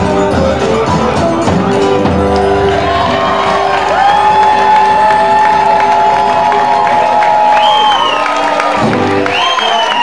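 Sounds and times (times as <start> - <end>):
audience cheering and clapping: 1.8 - 10.0.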